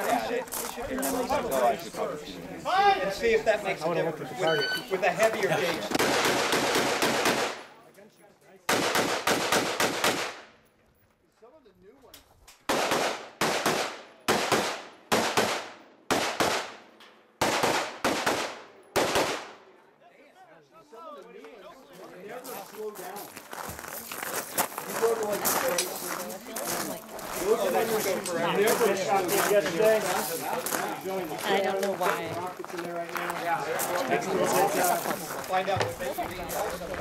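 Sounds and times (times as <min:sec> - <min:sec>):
rifle shots with echo: 0:05.9 - 0:07.7, 0:08.7 - 0:10.5, 0:12.7 - 0:19.6.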